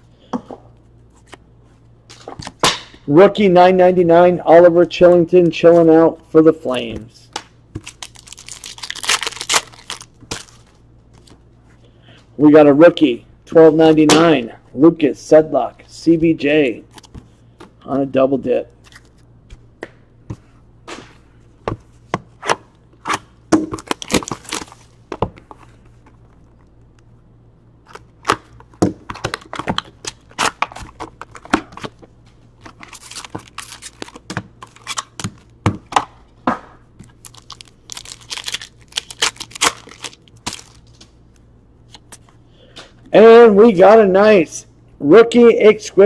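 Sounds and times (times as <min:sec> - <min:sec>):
card packs being torn open: 0:07.8 - 0:11.3, 0:23.7 - 0:24.9, 0:27.8 - 0:31.9, 0:32.6 - 0:35.5, 0:37.0 - 0:41.0
crinkling and sharp clicks: 0:37.0 - 0:42.2.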